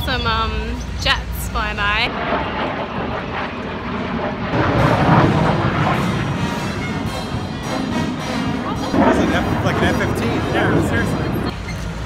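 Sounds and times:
jet engine roar overhead: 0:00.0 - 0:12.0.

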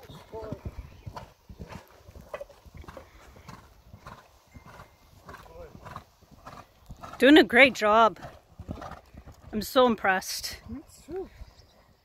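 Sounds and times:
horse hooves on sand: 0:00.0 - 0:12.0.

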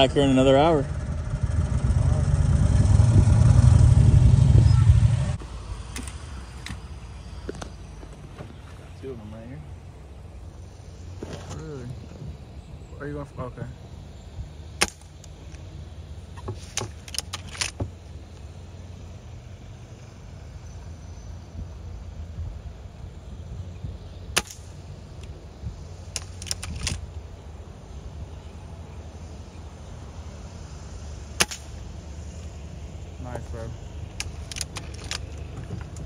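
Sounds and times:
steady low rumble: 0:00.0 - 0:36.0.

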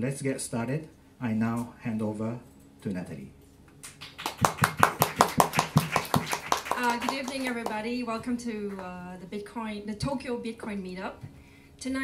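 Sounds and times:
hand clapping: 0:03.8 - 0:07.9
woman's voice: 0:06.7 - 0:12.0.

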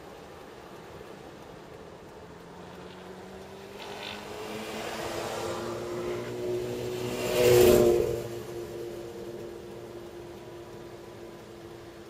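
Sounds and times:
car engine hum and road noise: 0:00.0 - 0:12.0
vehicle passing close by: 0:02.4 - 0:11.8.

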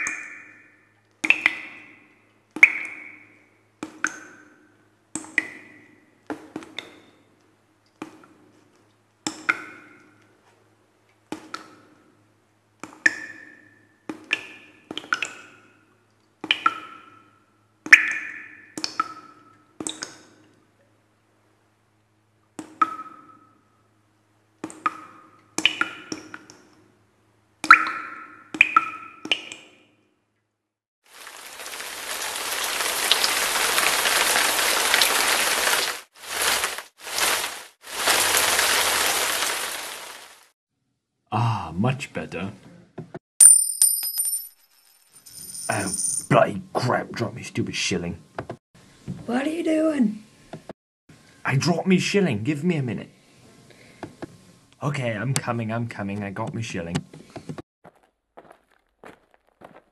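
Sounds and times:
water drops plinking: 0:00.0 - 0:01.9, 0:02.6 - 0:04.5, 0:17.9 - 0:20.2, 0:27.6 - 0:29.7
running water rushing: 0:31.1 - 0:40.5.

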